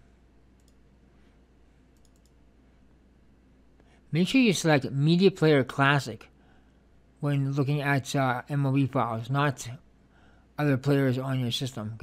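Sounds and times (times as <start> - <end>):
computer mouse clicks: 0.5 - 0.9, 1.9 - 2.4.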